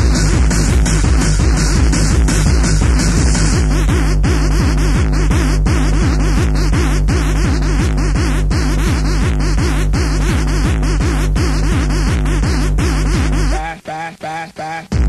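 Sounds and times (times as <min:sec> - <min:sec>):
fast techno music: 0:00.0 - 0:15.0.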